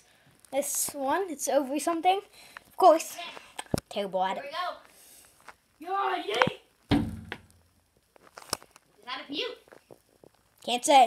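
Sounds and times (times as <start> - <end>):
faint clicks and taps: 3.4 - 4.0
thump with low hum: 6.9 - 7.7.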